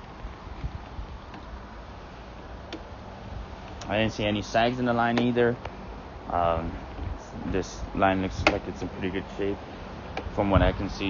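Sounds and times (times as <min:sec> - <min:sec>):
low steady background noise: 0:00.0 - 0:11.0.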